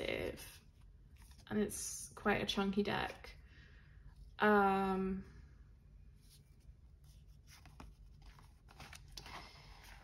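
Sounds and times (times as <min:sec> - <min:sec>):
cards sliding and brushing: 0:06.1 - 0:10.0.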